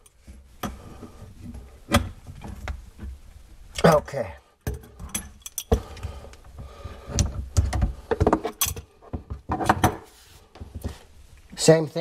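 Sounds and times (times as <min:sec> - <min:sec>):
metal wrenches clinking: 0:04.7 - 0:05.8.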